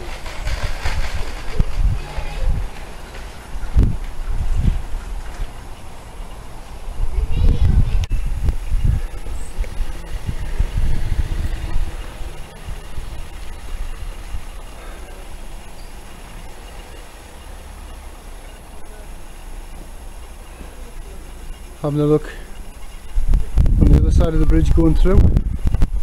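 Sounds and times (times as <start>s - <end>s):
wind on microphone: 0.0s - 17.1s, 22.6s - 26.0s
street traffic rumble: 0.0s - 26.0s.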